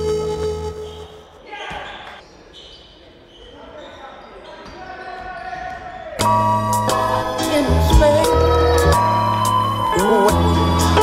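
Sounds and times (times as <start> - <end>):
background music: 0.0 - 1.2, 6.2 - 11.0
players' voices echoing: 0.8 - 6.4.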